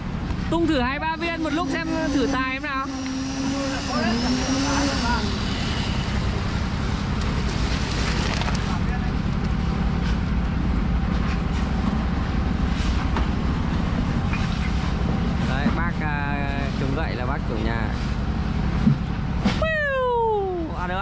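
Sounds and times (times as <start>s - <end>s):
machine engine running: 0.4s - 19.4s.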